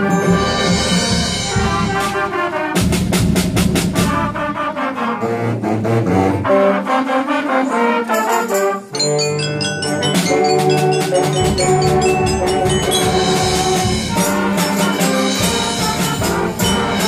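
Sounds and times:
concert band playing: 0.0 - 4.8, 7.8 - 17.0
trombones and trumpets: 0.0 - 17.0
snare drum strokes: 10.2 - 17.0.

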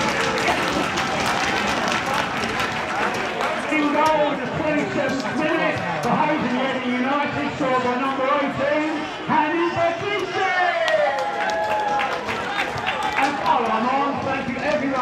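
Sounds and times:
crowd and players' voices: 0.0 - 15.0.

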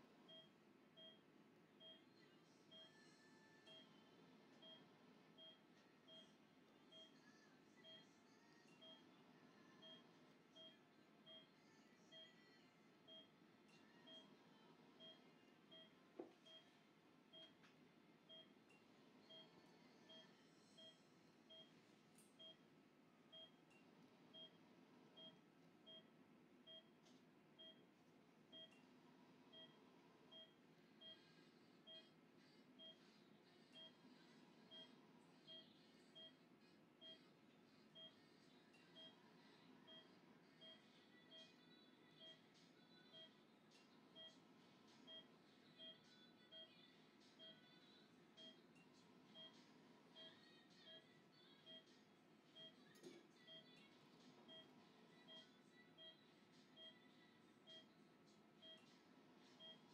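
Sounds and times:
patient monitor beeping: 0.3 - 7.2, 8.7 - 9.2, 9.8 - 11.5, 13.0 - 14.4, 15.0 - 17.6, 18.2 - 21.8, 22.4 - 22.7, 23.3 - 24.6, 25.2 - 27.0, 27.6 - 27.9, 28.5 - 28.8, 29.5 - 32.2, 32.8 - 33.0, 34.6 - 36.4, 38.8 - 39.2, 39.8 - 42.4, 43.1 - 43.4, 44.2 - 44.4, 45.0 - 46.8, 47.4 - 51.9, 52.6 - 53.8, 54.4 - 57.0, 57.6 - 58.0, 58.6 - 58.9, 59.6 - 59.9.

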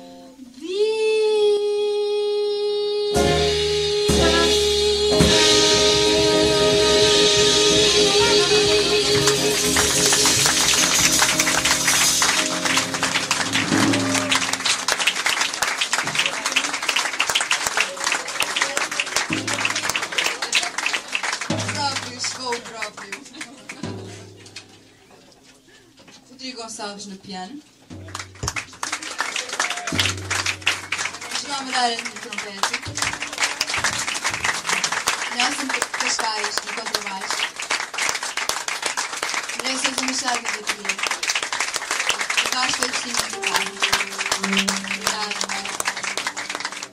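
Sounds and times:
jazz band chord: 3.1 - 15.4, 19.2 - 20.5, 27.9 - 28.9, 29.9 - 35.2, 42.8 - 46.9
sharp percussive strokes: 5.3 - 15.1, 19.3 - 20.5
audience applause: 8.2 - 24.1, 28.0 - 46.9.

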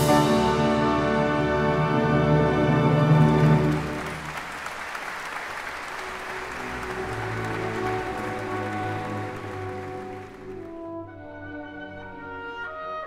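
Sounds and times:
soft orchestral music: 0.0 - 13.0
audience applauding: 2.9 - 10.9
orchestral chord: 6.0 - 12.8.

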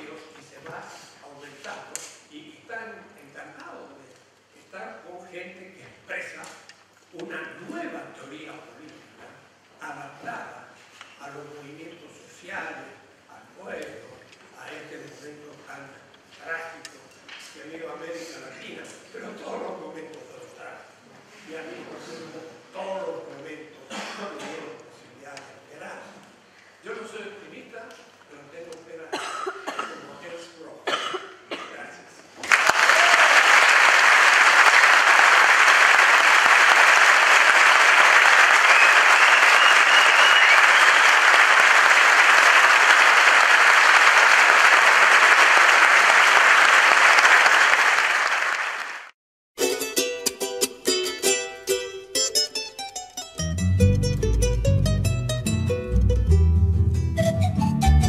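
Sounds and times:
audience applauding: 32.4 - 49.2
music: 49.6 - 58.0
bass line: 53.4 - 58.0.

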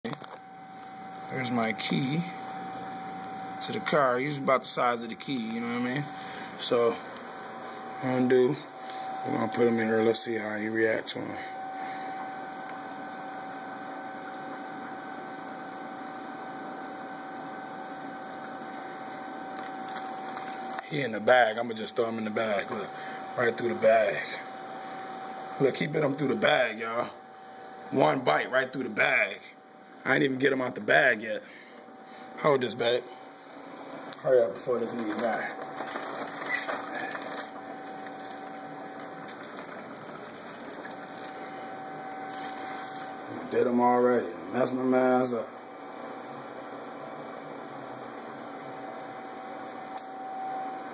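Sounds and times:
aquarium equipment humming: 0.0 - 50.9
high-pitched whine: 7.7 - 13.6.

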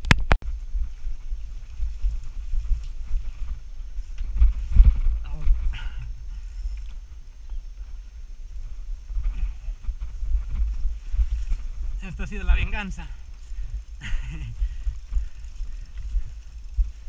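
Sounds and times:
bicycle rattling over bumpy grass: 0.0 - 17.0
wind buffeting microphone: 0.0 - 17.0.

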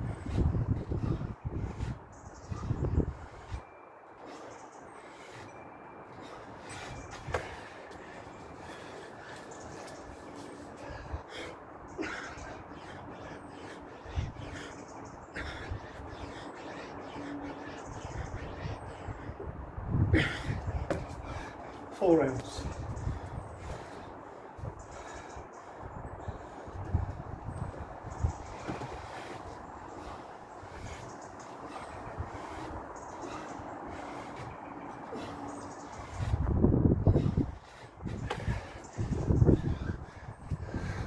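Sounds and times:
wind gusts on microphone: 0.0 - 3.7, 6.2 - 41.0
outdoor background noise: 0.0 - 41.0.

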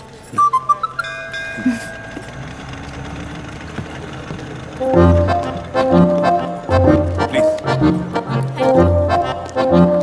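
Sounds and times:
bell-like chime: 1.0 - 2.8.

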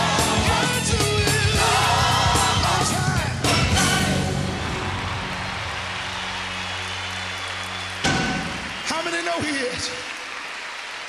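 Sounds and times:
audience applause: 4.0 - 11.0.

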